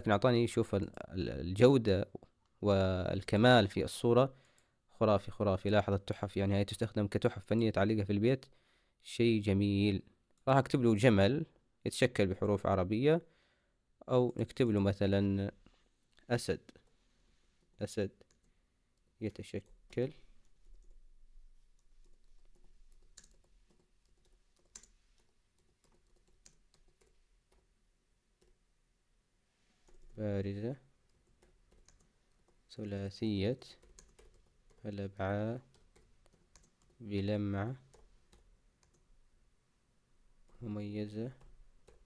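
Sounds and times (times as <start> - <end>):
typing on computer keyboard: 19.6 - 27.7, 31.0 - 32.6, 33.7 - 35.0, 35.6 - 39.0, 41.4 - 42.0.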